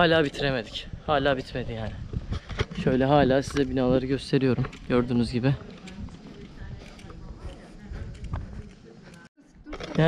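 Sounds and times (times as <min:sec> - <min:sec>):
faint voices: 0:04.4 - 0:10.0.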